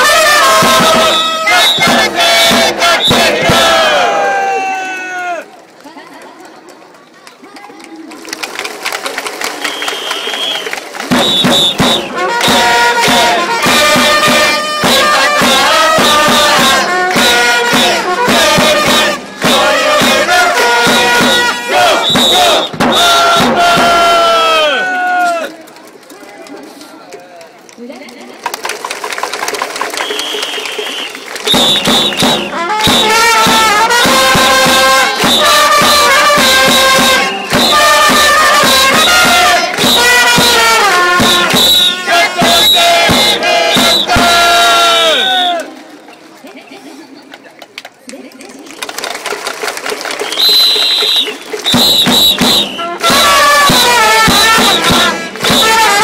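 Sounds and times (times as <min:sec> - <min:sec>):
whistle blasts: 0:00.0 - 0:03.9, 0:09.6 - 0:13.2, 0:20.9 - 0:23.5, 0:29.9 - 0:40.6, 0:41.2 - 0:45.7, 0:50.2 - 0:56.0
trumpets and drums playing: 0:00.0 - 0:05.0, 0:09.6 - 0:25.5, 0:29.7 - 0:45.8, 0:50.0 - 0:56.0
crowd voices: 0:00.0 - 0:56.0
scattered clapping: 0:05.6 - 0:24.0, 0:25.2 - 0:56.0.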